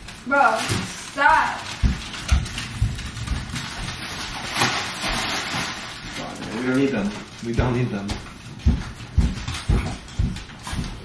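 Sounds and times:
plastic wrapping rustling: 0.0s - 11.0s
footsteps on hard floor: 0.7s - 5.3s, 7.1s - 11.0s.

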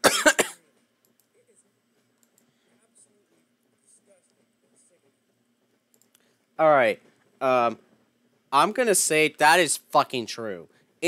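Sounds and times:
person coughing: 0.0s - 0.6s.

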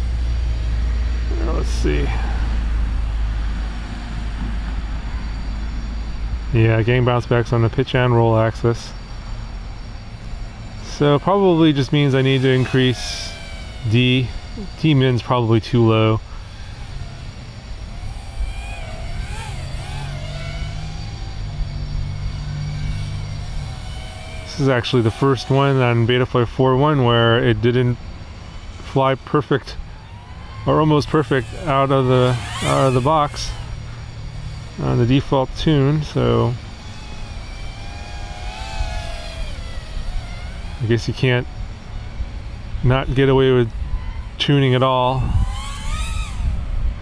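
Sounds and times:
low steady hum: 0.0s - 47.0s
quadcopter motors whining: 0.0s - 47.0s.

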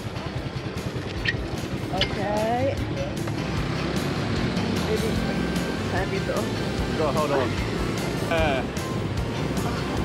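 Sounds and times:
scooter engine idling: 0.0s - 10.0s.

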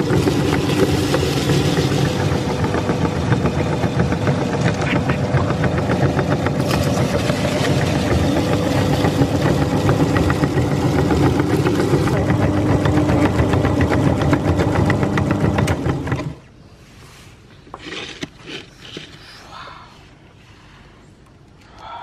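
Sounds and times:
meat grinder motor humming: 0.0s - 16.4s
chips crunching in grinder: 6.6s - 13.0s, 17.7s - 19.4s.

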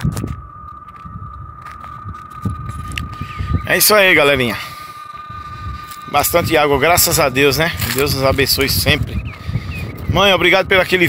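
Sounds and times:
thin high tone: 0.0s - 10.6s
wind buffeting microphone: 0.0s - 11.0s.

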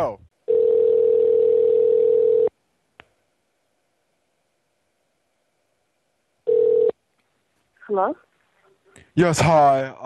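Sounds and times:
telephone ringback tone: 0.5s - 2.5s, 6.5s - 7.0s.

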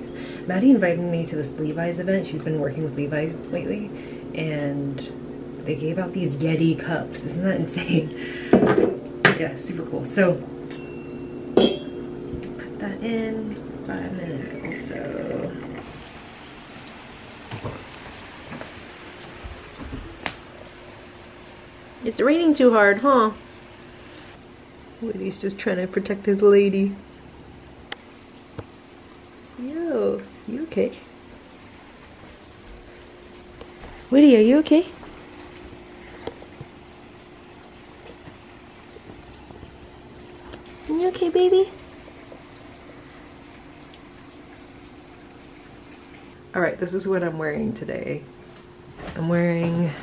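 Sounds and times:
faint steady hum: 0.0s - 50.0s
heavy rain hissing: 15.2s - 43.7s
drip-like ticks: 36.0s - 40.8s, 41.8s - 46.4s.

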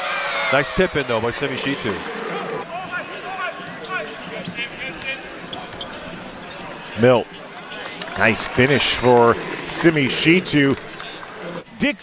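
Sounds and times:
voices in an arena: 0.0s - 12.0s.

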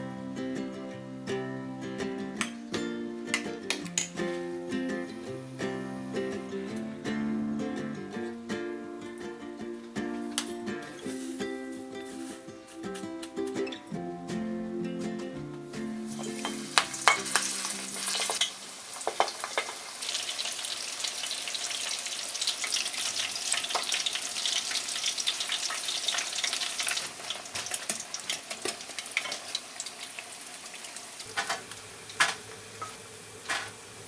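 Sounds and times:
prawns deep-frying in oil: 16.1s - 34.0s.

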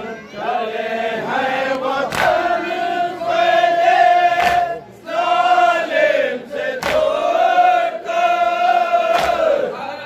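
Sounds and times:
men chanting together: 0.5s - 9.8s.

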